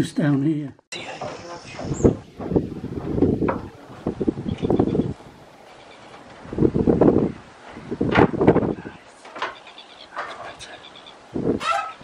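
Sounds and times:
wind buffeting microphone: 1.0 - 12.0.

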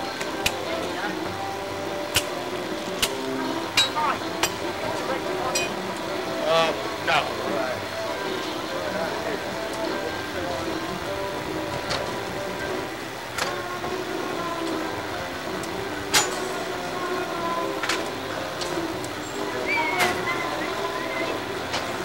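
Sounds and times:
faint music: 0.0 - 22.0
indistinct background voices: 0.0 - 22.0.

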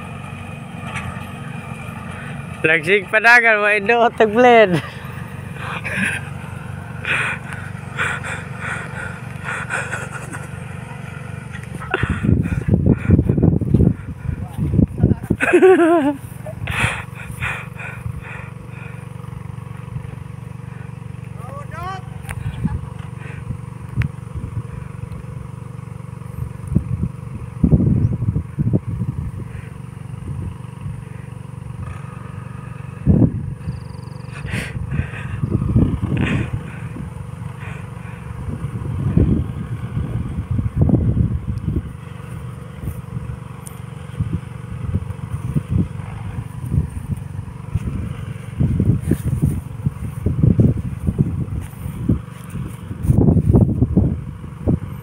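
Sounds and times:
tractor engine rumbling: 0.0 - 55.0.

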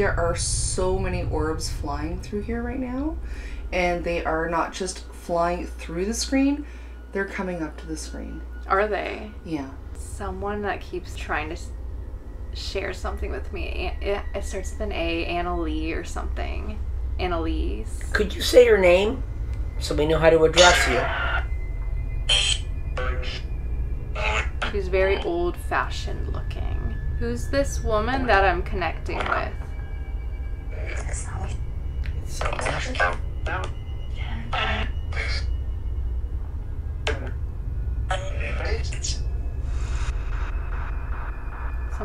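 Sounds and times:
steady low rumble: 0.0 - 42.0
radio static hum: 20.5 - 21.5, 22.3 - 23.5, 24.1 - 27.0, 27.8 - 29.6, 30.7 - 35.6, 38.1 - 42.0.

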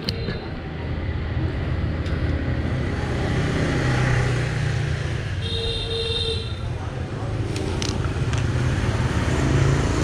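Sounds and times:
motorbike engine passing: 8.5 - 10.0.

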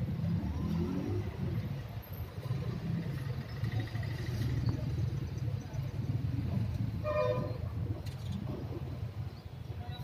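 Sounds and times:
vehicle horn toot: 7.0 - 7.6.

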